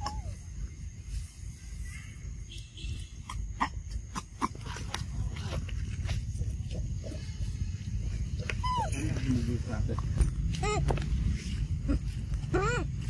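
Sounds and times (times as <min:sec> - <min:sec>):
macaques calling: 0:00.0 - 0:00.4, 0:03.2 - 0:05.6, 0:06.3 - 0:13.0.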